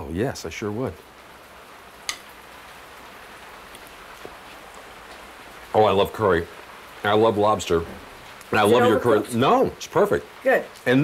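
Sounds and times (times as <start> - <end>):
pouring rain: 0.0 - 11.0.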